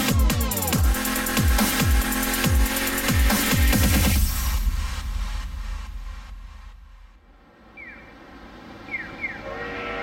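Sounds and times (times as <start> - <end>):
electronic music: 0.0 - 7.2.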